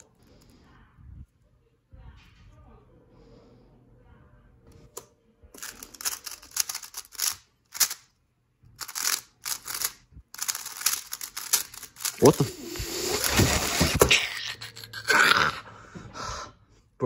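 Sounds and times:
speed cube clicking: 5.6 - 8.1, 8.8 - 12.4.

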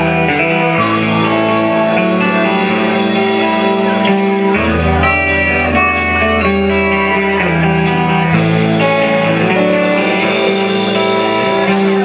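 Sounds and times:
bass guitar: 0.0 - 12.0
electric guitars: 0.0 - 12.0
harmonica: 0.4 - 6.6.

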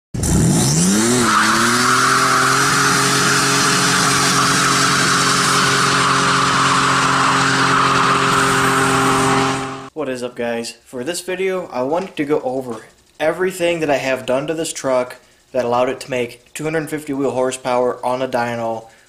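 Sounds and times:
truck engine revving: 0.2 - 9.9
tyre squeal: 0.7 - 9.8.

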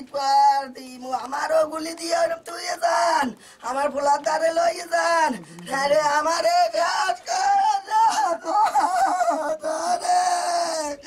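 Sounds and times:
woman wailing in grief: 6.9 - 11.0.

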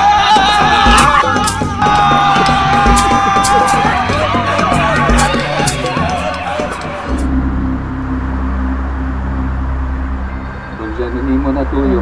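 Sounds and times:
low drone background music: 0.0 - 12.0.

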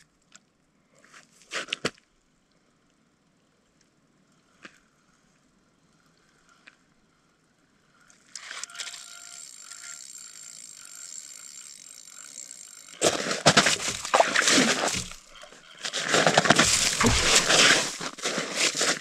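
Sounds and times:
fishing reel whirring: 7.8 - 19.0.

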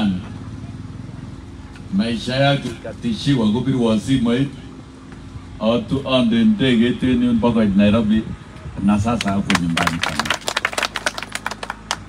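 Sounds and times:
crowd clapping: 9.1 - 12.0.

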